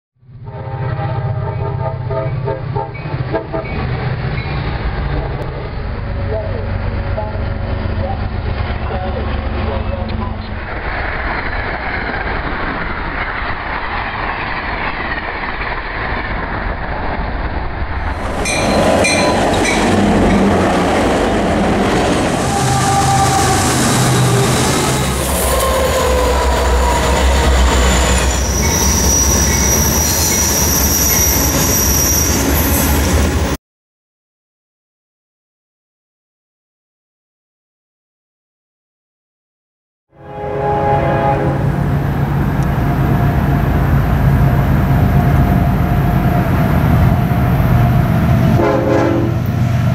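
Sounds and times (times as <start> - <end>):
train horn blasts: 0.4 - 3.8, 22.4 - 30.0, 40.1 - 41.8, 48.6 - 49.5
train wheels on rail: 2.8 - 33.6, 41.8 - 49.9.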